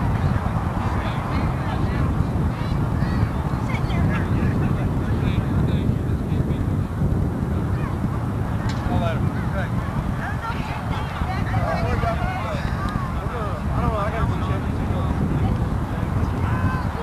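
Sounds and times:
wind rumble on microphone: 0:00.0 - 0:17.0.

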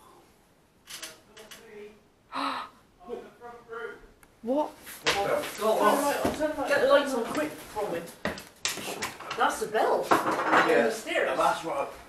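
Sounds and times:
person gasping: 0:02.3 - 0:02.8.

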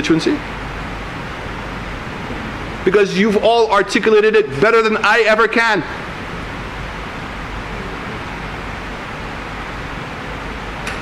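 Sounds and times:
room tone hiss: 0:00.0 - 0:11.0.

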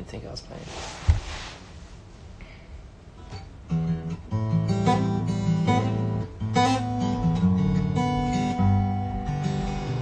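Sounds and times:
acoustic guitar notes ringing: 0:03.2 - 0:10.0.

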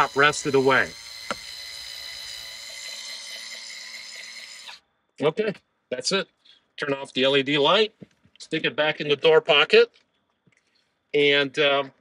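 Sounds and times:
electric screwdriver whine: 0:00.0 - 0:04.8.

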